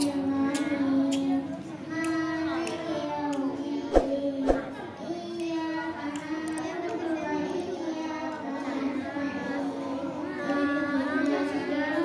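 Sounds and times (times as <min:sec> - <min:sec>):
girl reciting melodically: 0:00.0 - 0:12.0.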